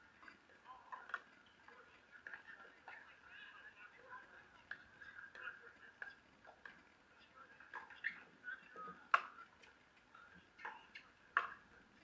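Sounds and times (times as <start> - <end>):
paddles striking plastic ball: 9.1 - 9.4.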